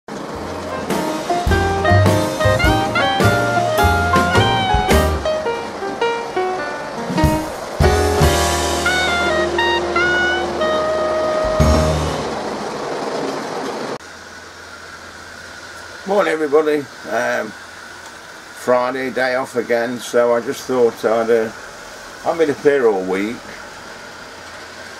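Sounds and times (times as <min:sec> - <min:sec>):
background music with bass line: 0:00.4 - 0:05.6, 0:06.6 - 0:12.4.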